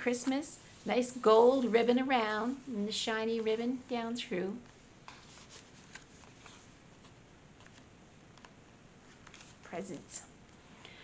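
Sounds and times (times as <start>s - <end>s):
paper pages rustling: 4.6s - 10.0s.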